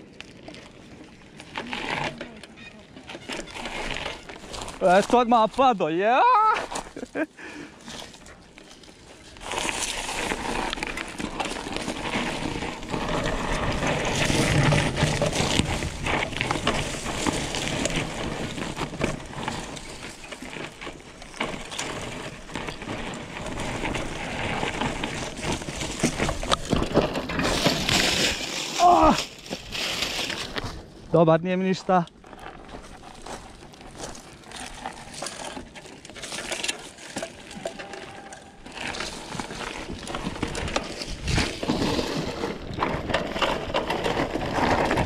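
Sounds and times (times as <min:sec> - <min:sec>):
bike rattling: 0:00.0 - 0:45.0
bike tyres on dirt and stones: 0:00.0 - 0:45.0
person crying out: 0:06.1 - 0:06.7, 0:28.8 - 0:29.2.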